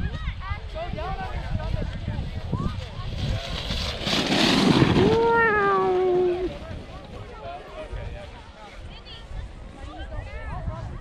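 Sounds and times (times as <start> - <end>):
loud rush of noise: 3.0 - 7.3
long falling shout: 5.0 - 6.5
faint children's voices: 5.0 - 11.0.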